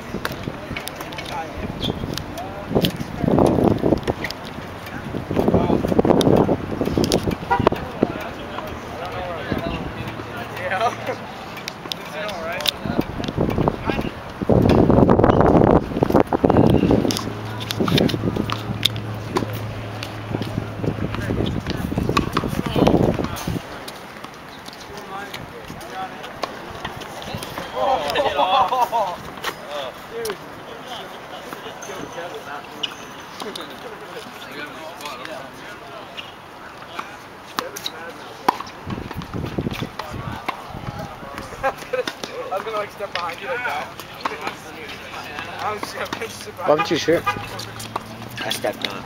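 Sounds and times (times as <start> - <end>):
wind buffeting microphone: 0.0 - 10.3, 12.7 - 23.8, 38.8 - 41.8
tennis ball strikes: 16.6 - 23.5, 26.4 - 28.2, 37.0 - 40.7.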